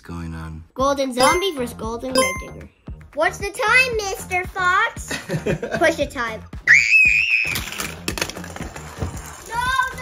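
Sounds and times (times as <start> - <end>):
toy trucks clattering down track: 7.6 - 10.0.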